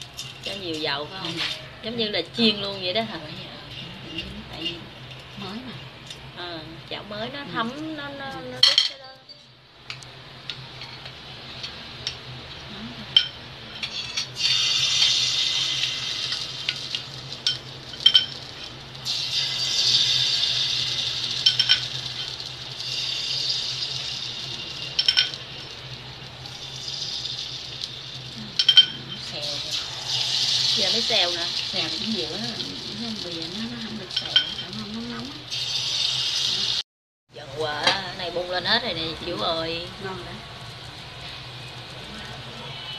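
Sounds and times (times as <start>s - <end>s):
batter sizzling in hot pan: 0.0s - 9.0s, 9.8s - 36.8s, 37.6s - 42.9s
metal ladle clinking on pan: 21.4s - 22.3s, 25.0s - 25.4s, 28.6s - 29.1s.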